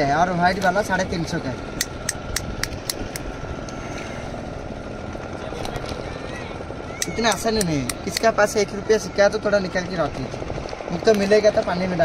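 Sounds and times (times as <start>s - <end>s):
motorboat engine running: 0.0s - 12.0s.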